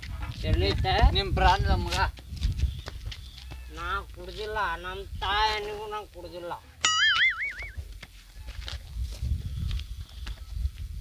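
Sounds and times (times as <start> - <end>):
wind rumbling on microphone: 0.0 - 6.0, 7.6 - 11.0
high wobbling cartoon tone: 6.8 - 7.8.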